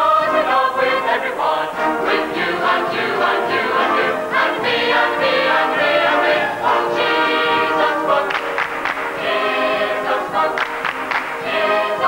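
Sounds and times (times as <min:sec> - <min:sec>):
mixed choir singing gospel: 0:00.0 - 0:12.0.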